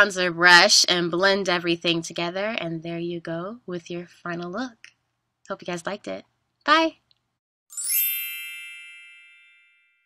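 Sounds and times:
bright bell-like chime: 0:07.7 - 0:10.0.

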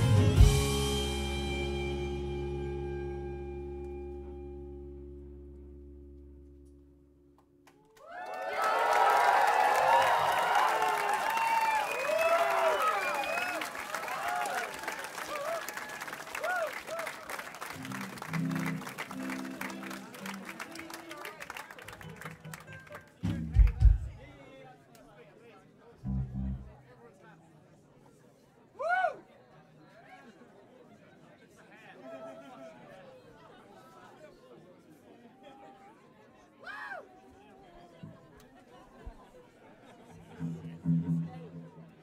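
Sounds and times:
crowd applause and cheering: 0:00.0 - 0:02.3, 0:07.6 - 0:24.3
held music chord: 0:00.0 - 0:07.6, 0:17.8 - 0:20.4, 0:26.1 - 0:26.8
low instrument notes: 0:00.0 - 0:07.7, 0:17.8 - 0:20.6, 0:26.0 - 0:26.8, 0:40.4 - 0:42.0.

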